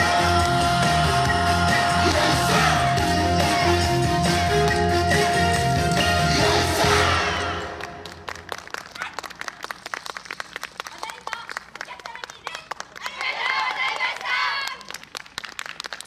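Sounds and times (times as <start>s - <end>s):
loud dance music: 0.0s - 7.8s
audience applause: 7.7s - 16.0s.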